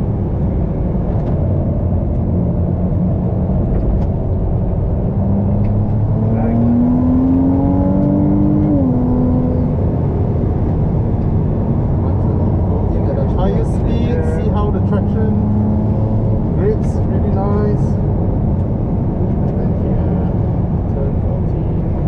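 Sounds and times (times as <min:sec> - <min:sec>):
road and wind noise: 0:00.0 - 0:22.0
sports car engine accelerating: 0:00.0 - 0:22.0.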